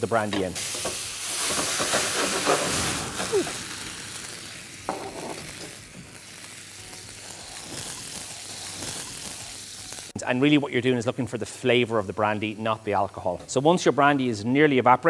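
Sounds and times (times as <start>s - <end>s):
mushrooms sizzling in a frying pan: 0.0s - 10.2s
flambe flames burning: 0.6s - 10.2s.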